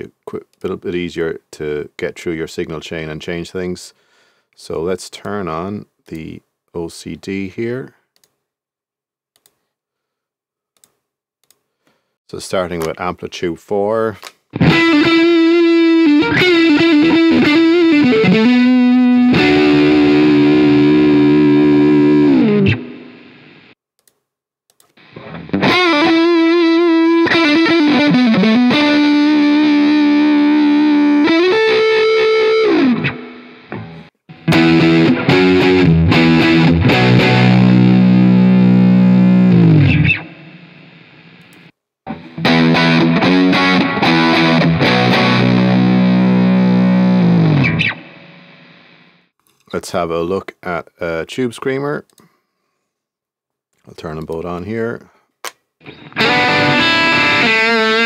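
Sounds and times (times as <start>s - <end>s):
distorted electric guitar: 14.5s - 23.8s, 25.0s - 49.3s, 55.8s - 58.0s.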